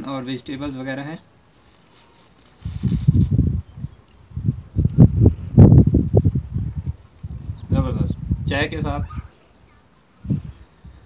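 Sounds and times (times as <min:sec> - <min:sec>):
plastic bag crinkle: 0:01.4 - 0:03.6
wind buffeting microphone: 0:02.4 - 0:09.4, 0:10.2 - 0:11.0.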